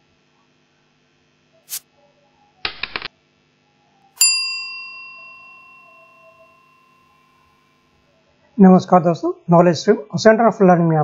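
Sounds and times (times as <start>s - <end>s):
notification bell ding: 4.2s - 7.5s.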